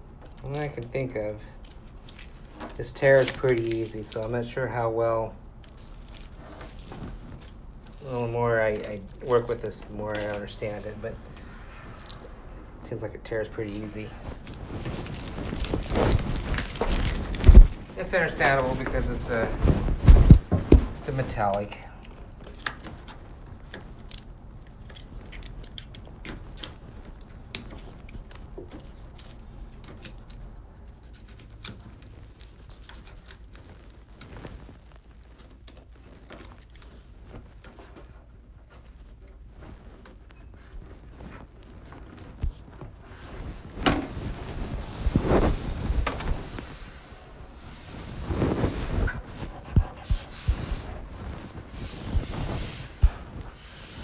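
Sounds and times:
vinyl film rubbing and scraping: 0:00.0 - 0:54.0
faint handling noises: 0:00.1 - 0:54.0.

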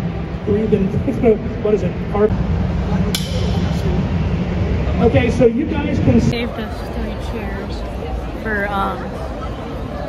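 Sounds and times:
hum of crowded hall: 0:00.0 - 0:10.0
sword striking steel armour: 0:03.2 - 0:03.7.

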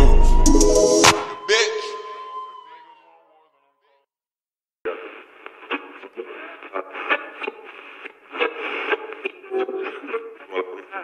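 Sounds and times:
thin radio-like voice: 0:01.4 - 0:02.7.

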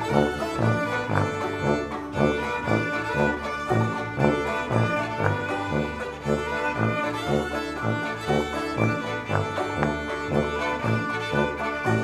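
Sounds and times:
bowed strings chamber music: 0:00.0 - 0:12.0
pulsing low notes: 0:00.0 - 0:12.0.

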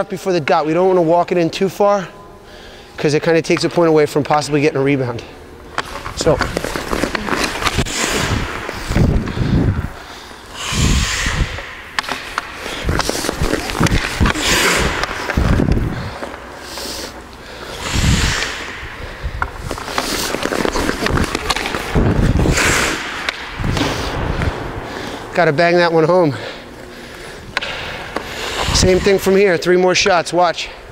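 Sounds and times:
skates scraping on ice: 0:05.8 - 0:09.5, 0:12.0 - 0:17.1, 0:19.4 - 0:24.1
stick hitting puck: 0:11.6 - 0:16.4, 0:19.4 - 0:24.5, 0:27.5 - 0:28.7.

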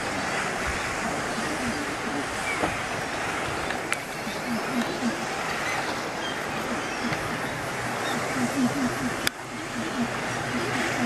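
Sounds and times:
small boat rushing on water: 0:00.0 - 0:11.0.

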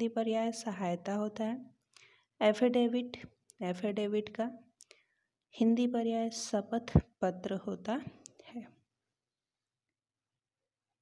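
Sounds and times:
woman speaking: 0:00.0 - 0:01.7, 0:02.4 - 0:04.6, 0:05.6 - 0:08.8.

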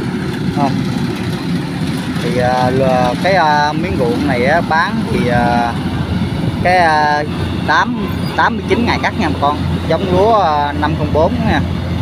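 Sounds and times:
combine harvester engine rumble: 0:00.0 - 0:12.0.

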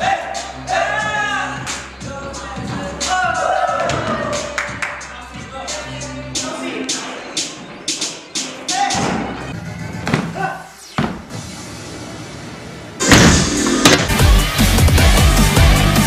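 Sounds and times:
music with beats and singing: 0:00.0 - 0:11.4, 0:13.3 - 0:16.0
bass-heavy music with strong beat: 0:00.0 - 0:11.6, 0:13.0 - 0:16.0.

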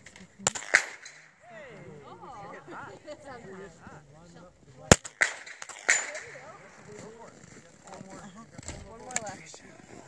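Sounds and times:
sharp clacks: 0:00.0 - 0:01.3, 0:04.9 - 0:07.1
rifle shot: 0:00.4 - 0:01.3, 0:04.9 - 0:06.8.

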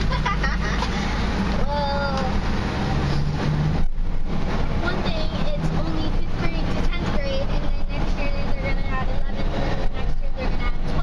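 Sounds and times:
truck engine and road rumble: 0:00.0 - 0:11.0.

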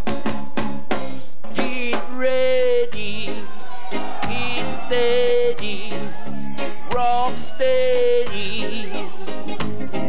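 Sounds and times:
live band playing: 0:00.0 - 0:10.0
man singing long notes: 0:01.6 - 0:09.3.

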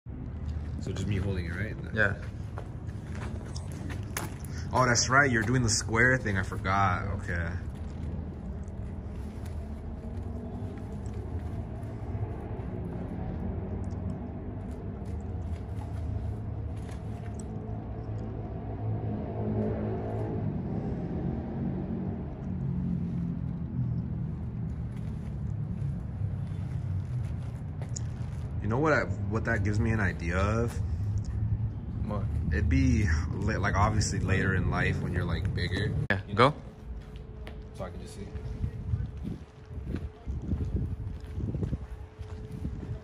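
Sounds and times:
street traffic rumble: 0:00.0 - 0:43.0
vehicle passing: 0:00.1 - 0:43.0.

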